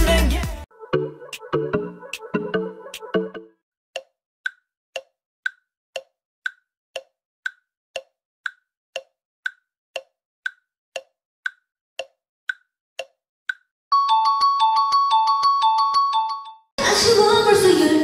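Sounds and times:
timer ticking: 1.3 - 14.6.

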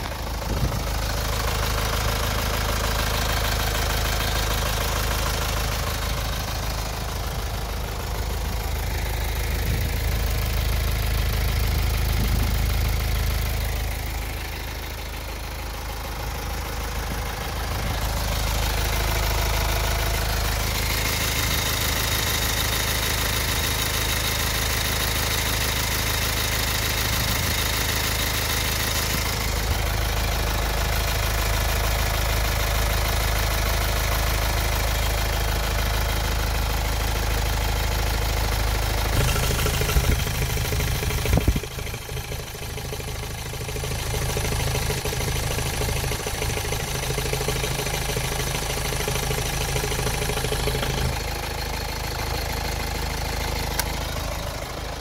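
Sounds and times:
car engine idling: 0.0 - 55.0.

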